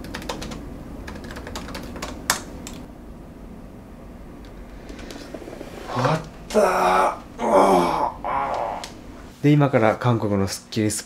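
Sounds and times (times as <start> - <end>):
laptop keyboard typing: 0.0 - 2.9.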